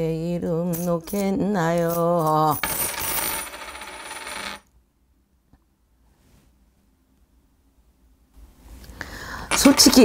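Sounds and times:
hand bells jingling: 0.7 - 3.4.

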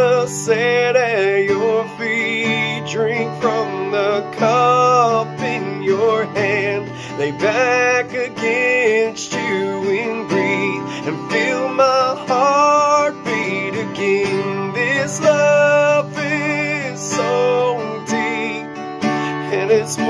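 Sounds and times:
man singing worship song: 0.0 - 20.0
strummed acoustic guitar: 0.0 - 20.0.

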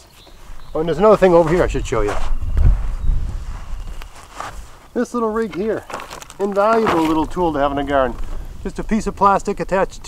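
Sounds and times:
footsteps on stony soil: 0.0 - 8.5
clothes rustling: 0.2 - 8.5
low microphone rumble: 6.9 - 10.0.

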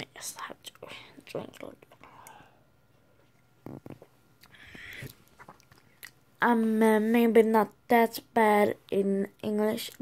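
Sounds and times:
woman whispering: 0.0 - 2.6.

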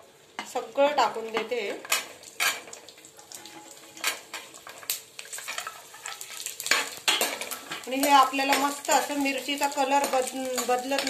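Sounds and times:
light sizzle of frying: 0.0 - 11.0
metal spoon scraping frying pan: 1.8 - 4.8, 5.4 - 9.3.

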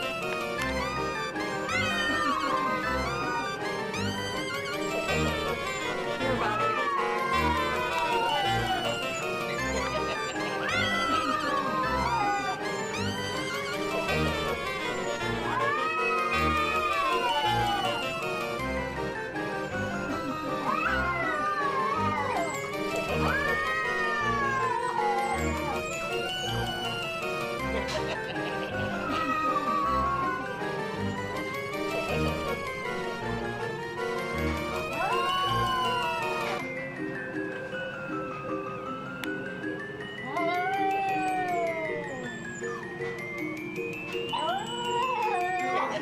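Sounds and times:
background music: 0.0 - 46.0
cat yowling: 6.4 - 8.9, 44.4 - 46.0.

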